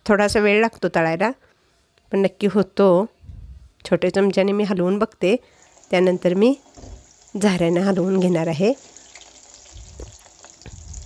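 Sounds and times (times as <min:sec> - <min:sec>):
potatoes sizzling in hot oil: 0:05.4 - 0:11.0.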